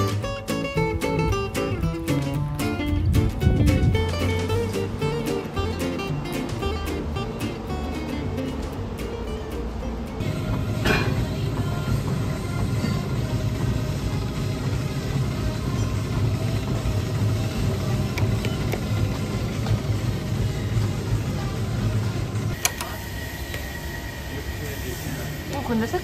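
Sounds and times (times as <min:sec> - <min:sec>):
treadmill motor and belt rumble: 0:10.2 - 0:26.0.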